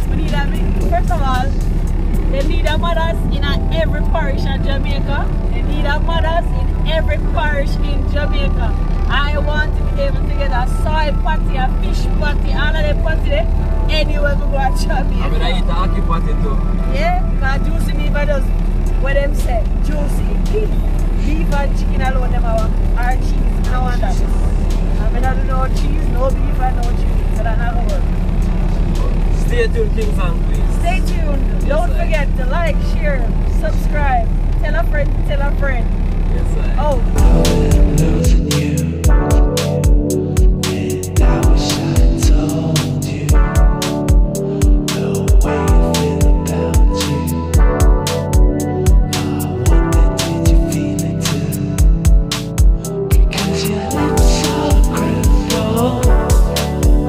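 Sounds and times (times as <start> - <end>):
voices talking: 0.0 - 39.0
car engine and tyres rumbling: 0.0 - 57.0.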